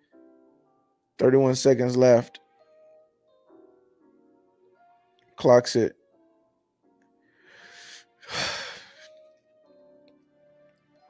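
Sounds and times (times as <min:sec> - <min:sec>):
quiet background music: 0:00.0 - 0:11.0
person inhaling through mouth: 0:07.4 - 0:09.1.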